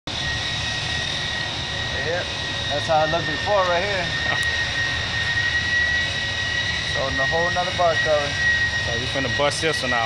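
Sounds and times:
workshop machinery whining and humming: 0.1 - 10.0.

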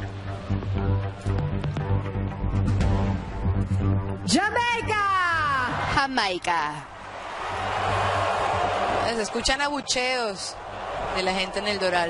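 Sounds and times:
arena crowd booing: 5.2 - 12.0.

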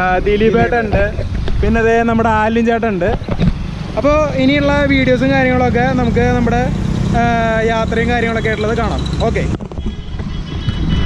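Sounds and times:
men talking: 0.0 - 9.6
low road noise rumble: 0.0 - 11.0.

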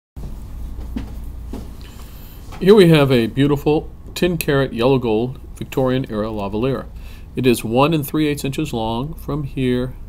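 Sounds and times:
low background hum: 0.2 - 10.0.

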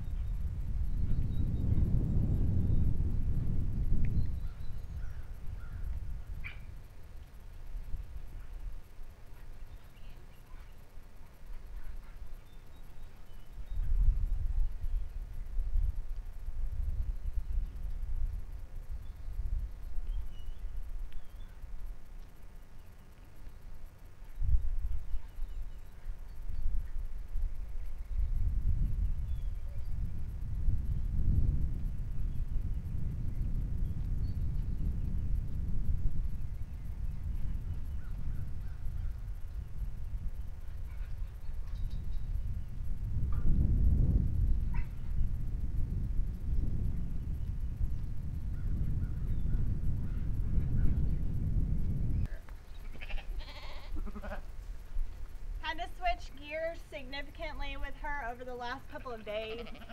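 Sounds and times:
wind rumble on microphone: 0.0 - 59.9
faint livestock calls: 52.8 - 54.6, 59.4 - 59.9.

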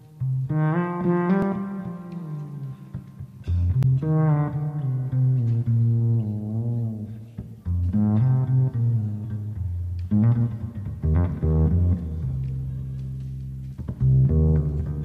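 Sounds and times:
low melody in long held notes: 0.0 - 15.0.

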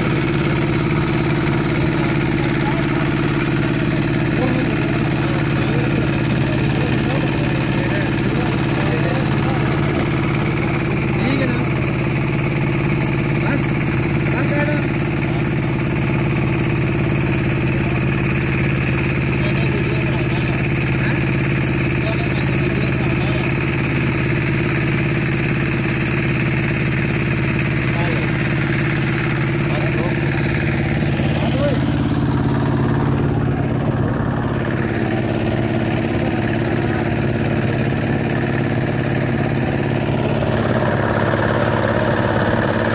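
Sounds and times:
diesel boat engine running: 0.0 - 42.9.

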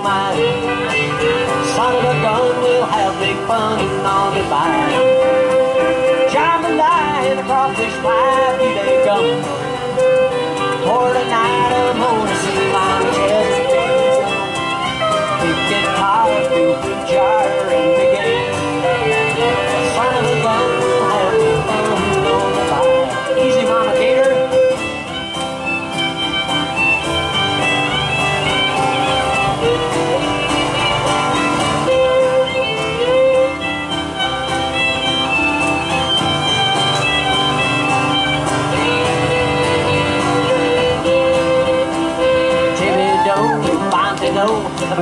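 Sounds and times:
fiddle sliding melody: 0.0 - 45.0
strummed acoustic guitar: 0.0 - 45.0.

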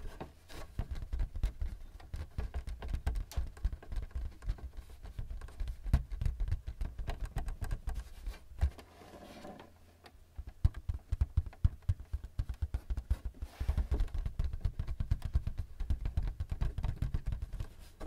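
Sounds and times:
soft rubbing on plastic: 0.0 - 9.8, 11.7 - 18.0
fingertips tapping on plastic: 0.6 - 8.8, 10.3 - 18.0.

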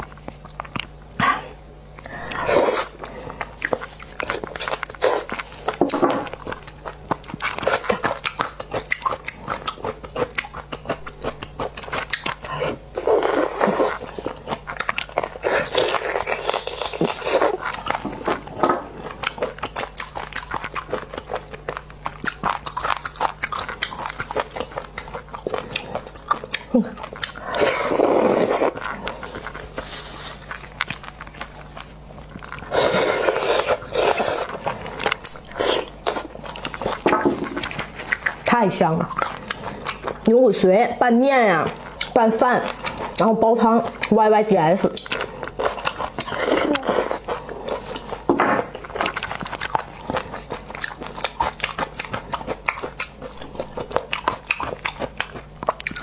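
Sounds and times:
chewing and biting: 0.0 - 56.0.

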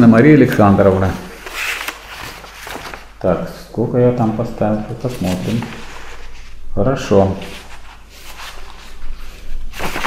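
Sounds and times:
paper pages rustling: 0.0 - 3.3, 4.2 - 10.0.

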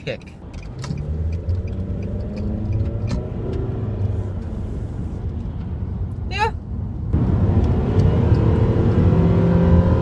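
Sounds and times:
road rumble: 0.0 - 10.0
car engine revving up: 0.7 - 4.6, 7.2 - 10.0.

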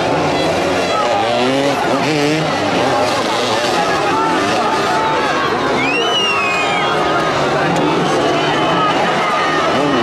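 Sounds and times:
crowd voices: 0.0 - 10.0
motorcycle engines revving: 0.0 - 10.0.

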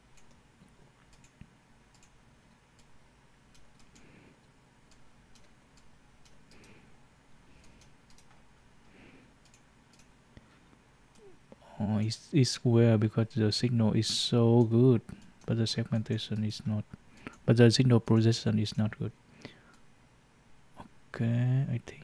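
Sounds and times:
faint computer mouse clicks: 9.4 - 10.5.

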